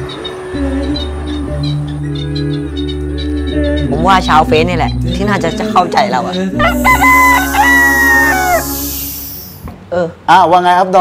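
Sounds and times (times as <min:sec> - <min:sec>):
rooster crowing: 0:06.6 - 0:09.3.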